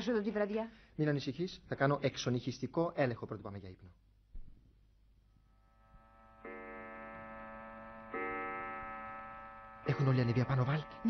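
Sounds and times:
clock striking chimes: 0:06.4 - 0:11.0.

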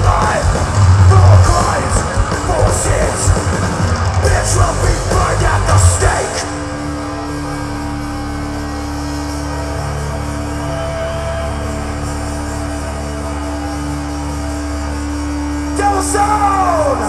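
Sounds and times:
electric guitar and bass drone: 0:00.0 - 0:17.0.

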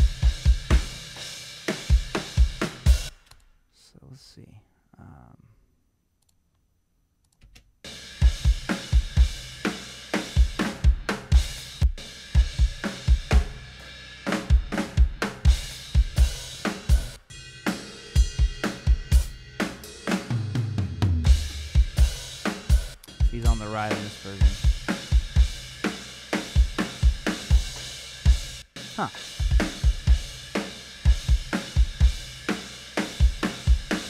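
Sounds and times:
drum kit playing steady beat: 0:00.0 - 0:03.2, 0:07.8 - 0:34.0.

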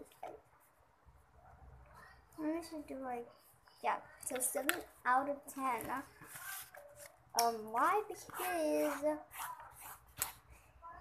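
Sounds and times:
pen rustling on paper: 0:05.6 - 0:07.2, 0:07.8 - 0:10.5.

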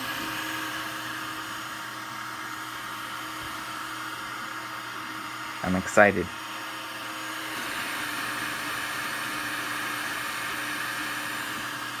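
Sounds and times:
cooling fans whirring: 0:00.0 - 0:12.0.

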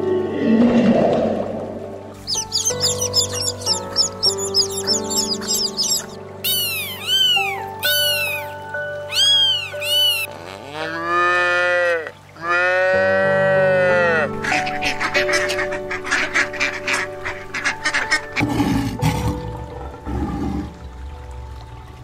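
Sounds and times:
background music: 0:00.0 - 0:11.2, 0:12.3 - 0:22.0
chicks peeping: 0:02.2 - 0:08.5, 0:09.1 - 0:10.3
cat meowing: 0:06.4 - 0:08.5, 0:09.1 - 0:10.3
cow mooing: 0:10.0 - 0:14.4.

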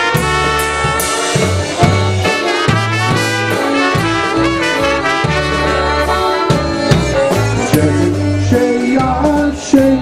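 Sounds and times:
trumpets playing waltz melody: 0:00.0 - 0:08.5
band bass notes: 0:00.0 - 0:10.0.

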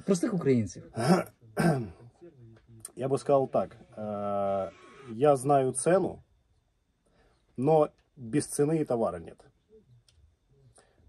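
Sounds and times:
man clearing his throat: 0:01.0 - 0:02.0.

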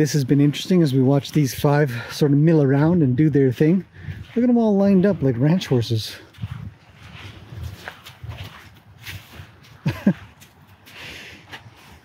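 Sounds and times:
footsteps on sandy gravel: 0:00.1 - 0:12.0.

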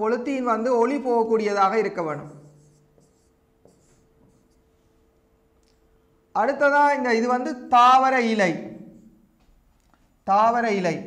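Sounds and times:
stylus scratching on tablet: 0:01.8 - 0:04.7.

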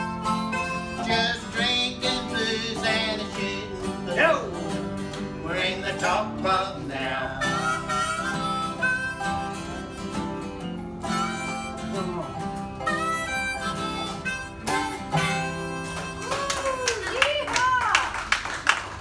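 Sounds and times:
strummed acoustic guitar: 0:00.0 - 0:16.4
harmonica with bent notes: 0:00.0 - 0:16.8
resonator guitar: 0:00.0 - 0:16.9.

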